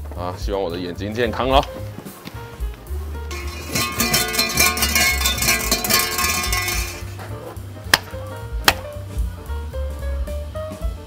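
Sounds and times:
background music with bass: 0.0s - 11.0s
hand clap: 7.9s - 8.9s.

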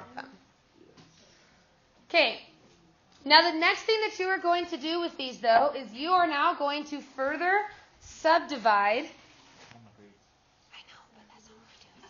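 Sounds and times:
faint whispering voices: 9.8s - 12.0s.

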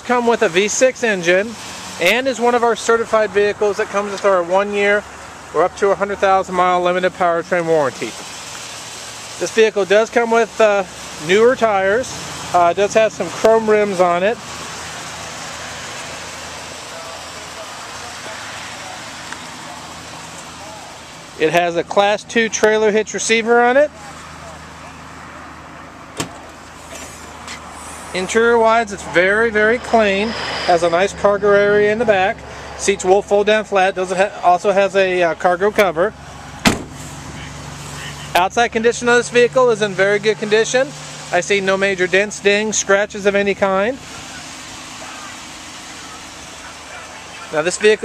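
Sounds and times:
car engine idling: 0.0s - 48.0s
low vehicle rumble: 0.0s - 48.0s
open-air noise: 0.0s - 48.0s
even hiss: 26.6s - 33.2s.

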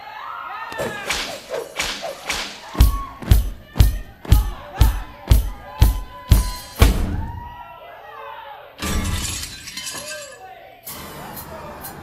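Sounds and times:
drum beat with hi-hat: 1.1s - 7.5s
glass shattering: 8.8s - 10.5s.

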